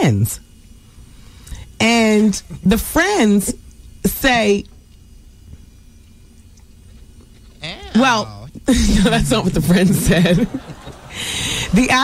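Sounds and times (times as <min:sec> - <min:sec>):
person saying ew: 0:07.6 - 0:08.5.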